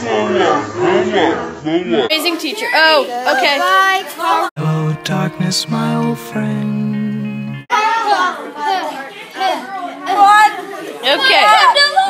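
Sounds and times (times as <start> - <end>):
voices chattering: 7.7 - 12.0.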